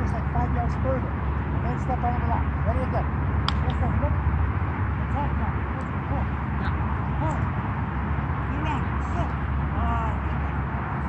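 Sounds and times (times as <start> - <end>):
distant voices calling: 0.0 - 11.0
steady low rumble: 0.0 - 11.0.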